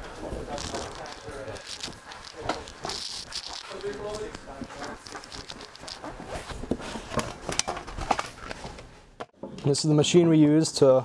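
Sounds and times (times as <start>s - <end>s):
plastic sheet rustling and crinkling: 0.0s - 8.8s.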